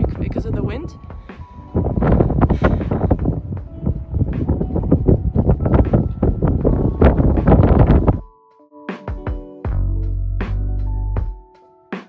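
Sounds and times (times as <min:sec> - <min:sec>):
gusty wind buffeting microphone: 0:00.0 - 0:08.2.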